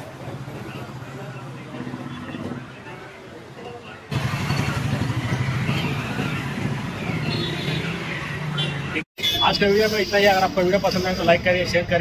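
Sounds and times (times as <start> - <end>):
street ambience: 0.0 - 12.0.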